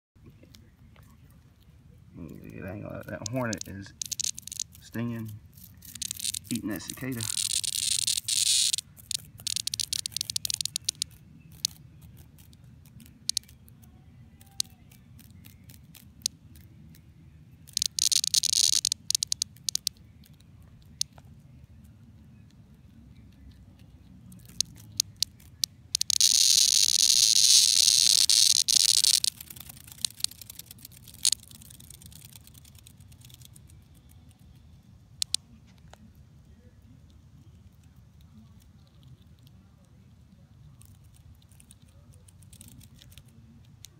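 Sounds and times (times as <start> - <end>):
cicada clicks: 2.2 - 17.0, 17.6 - 21.3, 23.3 - 36.0, 37.5 - 39.6, 40.6 - 43.9
cicada crackly buzzing: 2.4 - 13.6, 17.6 - 21.1, 24.4 - 34.5.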